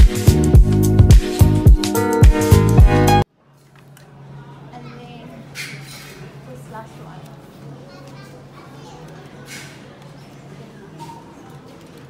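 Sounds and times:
faint chatter of shoppers: 3.3s - 12.0s.

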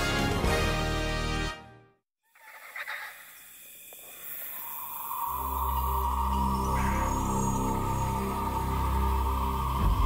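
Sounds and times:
low ambient film music: 4.0s - 10.0s.

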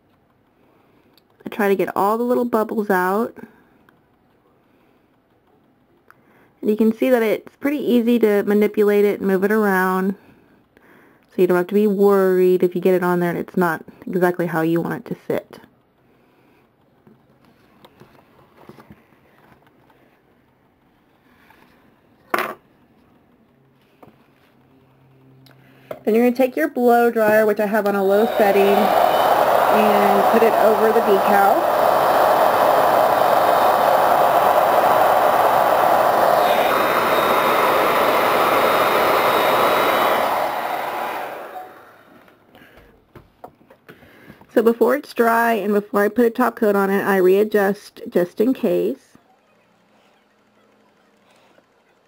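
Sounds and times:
hair dryer blowing: 27.2s - 42.5s
loud rush of noise: 28.0s - 42.1s.

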